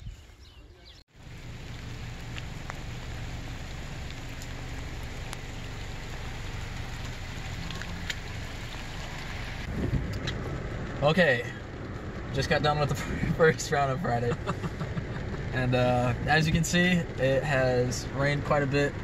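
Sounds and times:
rain on wet pavement: 0:01.1 - 0:19.0
raindrop ticks: 0:01.2 - 0:19.0.

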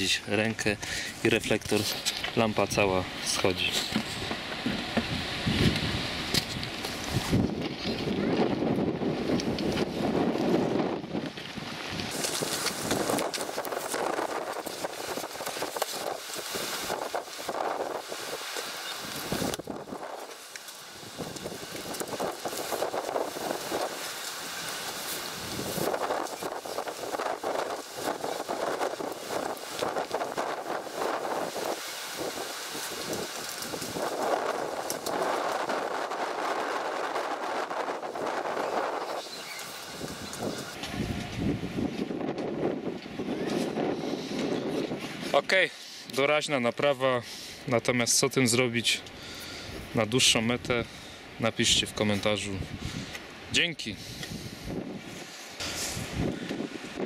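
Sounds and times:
wind buffeting microphone: 0:04.0 - 0:45.3, 0:52.5 - 0:53.2, 0:54.0 - 0:57.0.

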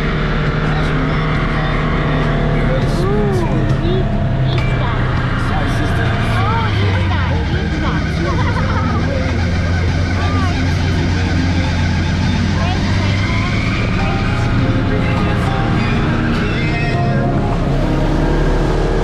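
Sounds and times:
vehicle engine running: 0:00.0 - 0:19.0.

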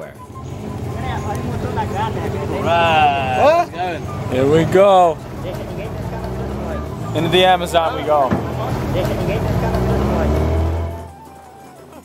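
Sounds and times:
background music: 0:00.0 - 0:12.0
outboard engine droning: 0:00.0 - 0:12.0.

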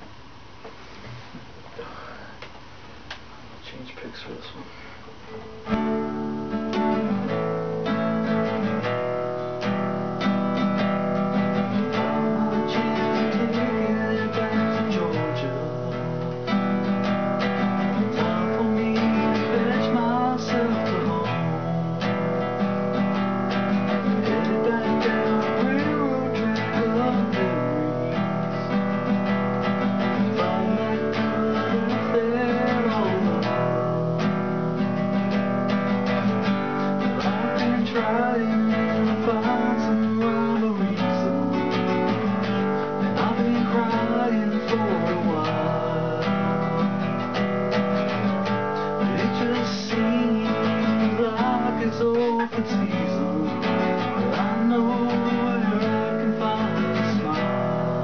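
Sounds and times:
classical guitar playing: 0:05.3 - 0:58.0.

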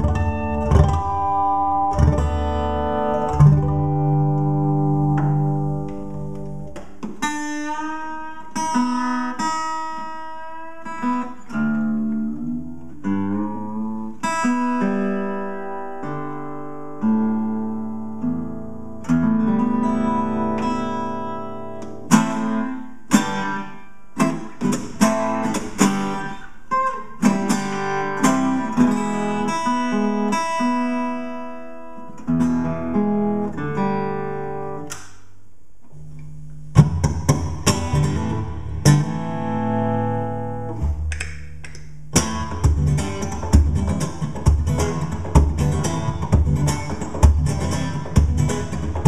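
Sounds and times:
strummed guitar chords: 0:00.0 - 0:35.2, 0:35.9 - 0:49.0
acoustic guitar fingerpicking: 0:00.0 - 0:49.0.

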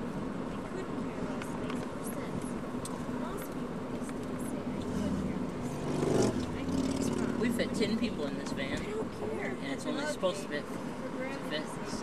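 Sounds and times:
engine hum and road noise: 0:00.0 - 0:12.0.

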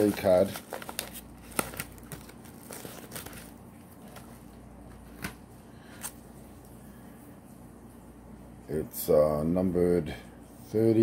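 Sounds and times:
paper envelope rustling: 0:00.0 - 0:06.2.

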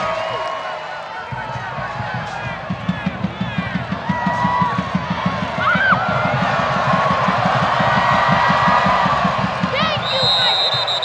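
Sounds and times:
stadium crowd cheering: 0:00.0 - 0:11.0
fast low beat: 0:01.3 - 0:11.0
high-pitched whistle tone: 0:10.0 - 0:11.0.

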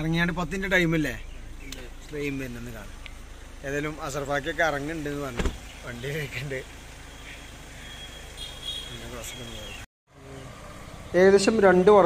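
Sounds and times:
vehicle engine hum and road noise: 0:00.0 - 0:12.0
single thump: 0:05.4 - 0:05.7.

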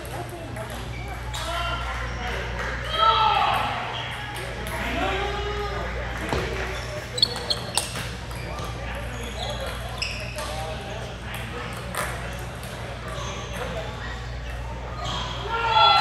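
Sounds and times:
voices talking: 0:00.0 - 0:16.0.

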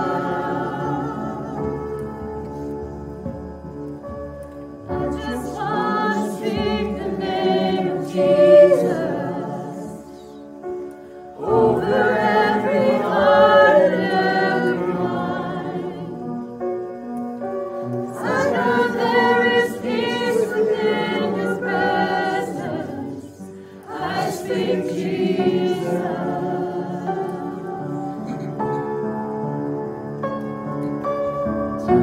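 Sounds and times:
women singing worship song: 0:00.0 - 0:02.2, 0:04.9 - 0:10.5, 0:11.3 - 0:16.5, 0:17.9 - 0:28.7.

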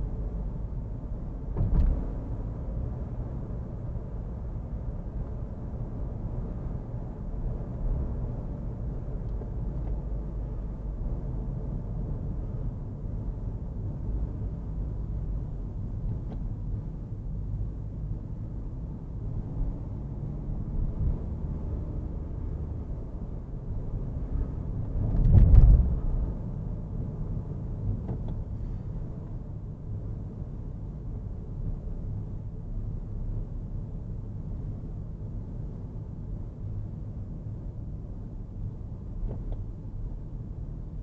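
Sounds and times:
car road and engine rumble: 0:00.0 - 0:41.0.

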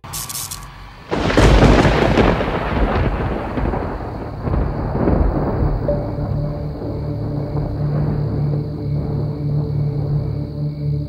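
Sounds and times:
thunder rumbling: 0:00.7 - 0:11.0.

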